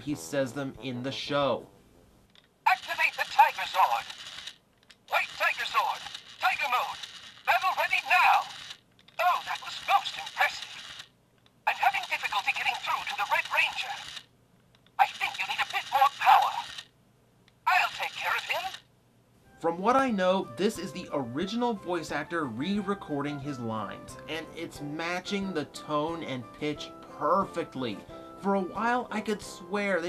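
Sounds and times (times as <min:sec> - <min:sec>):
toy speaker voice phrases: 0:02.7 - 0:04.2, 0:05.1 - 0:08.6, 0:09.2 - 0:10.8, 0:11.7 - 0:14.2, 0:15.0 - 0:16.8, 0:17.7 - 0:18.8.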